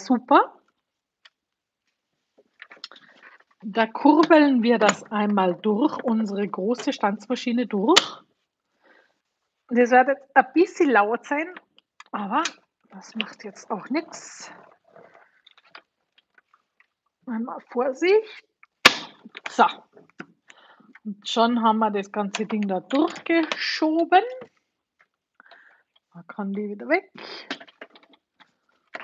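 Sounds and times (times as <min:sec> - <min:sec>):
plastic plates clicking and tapping: 0:04.2 - 0:07.0, 0:22.0 - 0:25.7.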